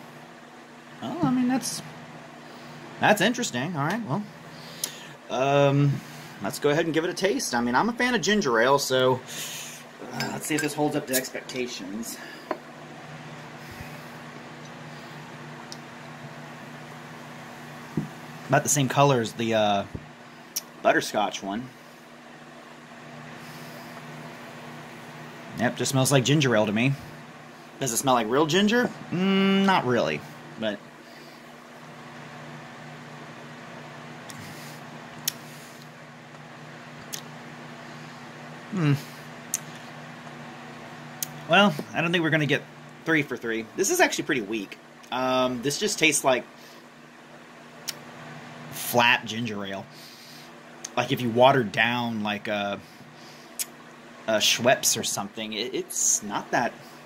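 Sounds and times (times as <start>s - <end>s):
low room hum: 0.0s - 57.0s
soft thump: 18.0s - 18.2s.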